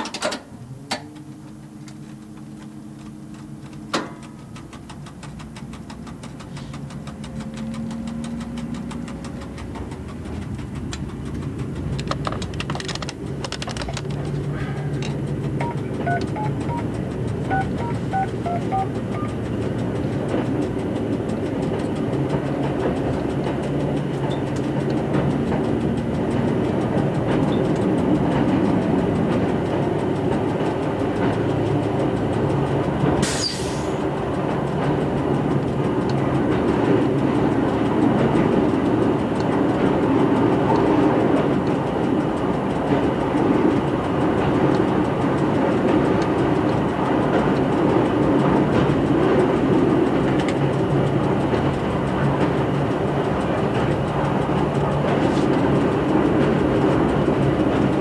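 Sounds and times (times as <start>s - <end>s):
railcar engine drone: 0.0s - 58.0s
wheel-on-rail rumble: 0.0s - 58.0s.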